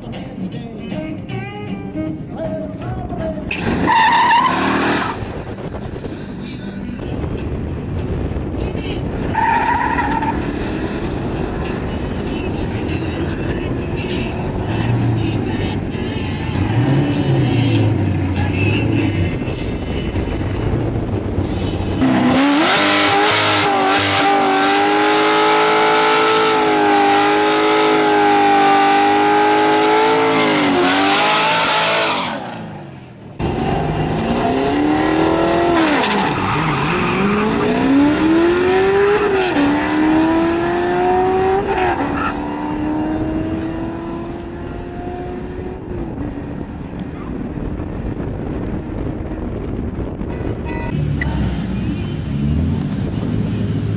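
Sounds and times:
race cars driving away: 3.3s - 6.1s, 7.5s - 50.2s, 50.9s - 53.9s
car engine at high revs: 13.6s - 19.3s, 20.5s - 32.8s, 33.4s - 49.8s, 51.0s - 53.9s
engine revving through gears: 22.0s - 32.4s, 33.4s - 45.7s.

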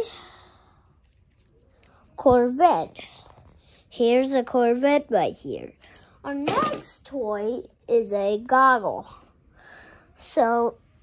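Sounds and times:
boy speaking: 2.2s - 3.2s, 3.9s - 9.2s, 10.2s - 10.8s.

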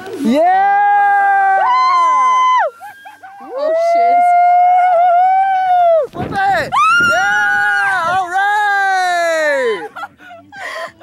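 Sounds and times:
people howling yells: 0.2s - 6.1s, 6.8s - 9.9s.

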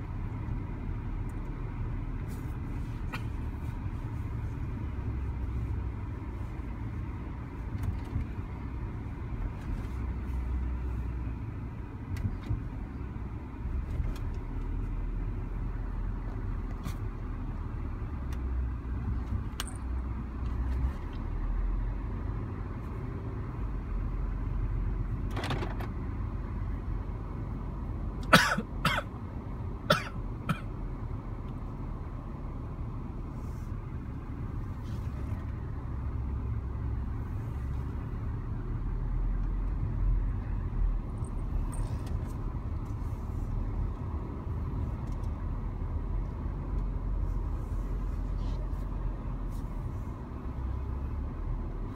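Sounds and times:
car engine and tyre rumble: 0.0s - 51.9s.

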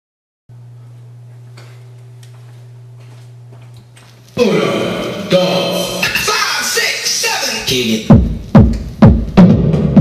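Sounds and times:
low electrical hum: 0.5s - 9.4s.

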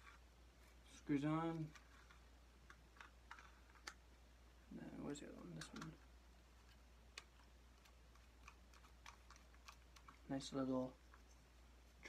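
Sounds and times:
plastic parts clicking: 1.5s - 4.0s, 5.4s - 6.0s, 7.1s - 10.3s.

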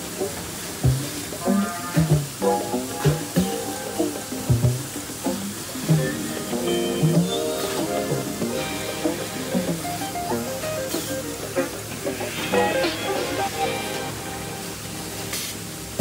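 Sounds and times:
instrumental background music: 0.0s - 15.5s.

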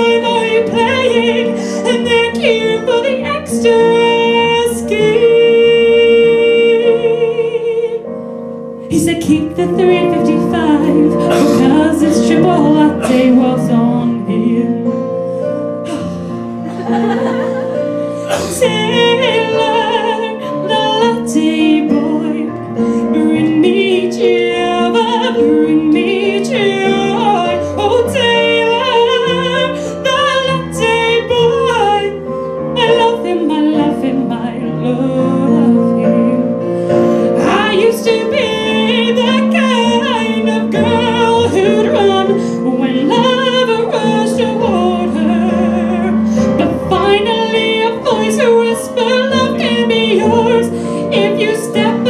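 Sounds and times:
woman singing into a microphone: 0.0s - 8.2s, 8.8s - 16.3s, 17.8s - 52.0s.

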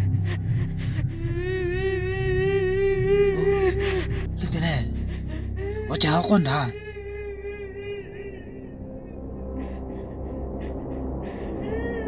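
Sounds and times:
low drone: 0.0s - 12.0s.

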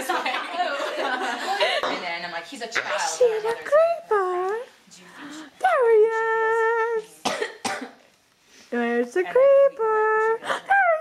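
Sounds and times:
person coughing: 7.2s - 8.0s.

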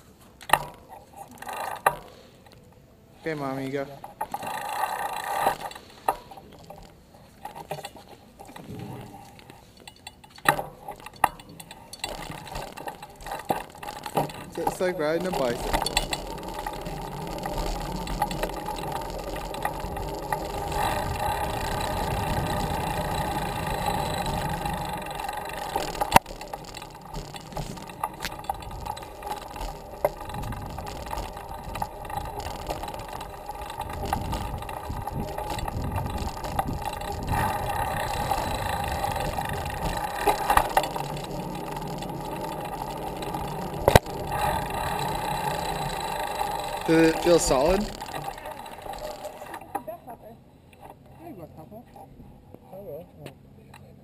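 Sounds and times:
bicycle chain running noise: 0.0s - 2.6s, 3.2s - 51.4s
tyre rumble: 3.2s - 49.7s.

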